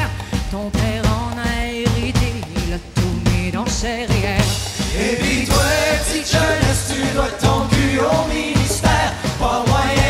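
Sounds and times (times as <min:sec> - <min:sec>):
drum kit beat: 0:00.0 - 0:10.0
live folk-rock band: 0:00.0 - 0:10.0
woman singing: 0:00.0 - 0:10.0.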